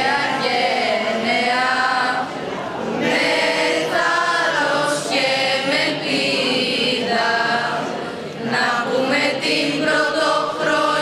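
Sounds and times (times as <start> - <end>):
children singing a cappella: 0.0 - 11.0.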